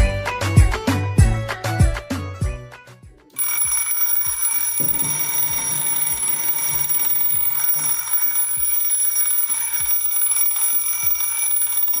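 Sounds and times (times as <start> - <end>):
alarm clock bells ringing: 3.4 - 12.0.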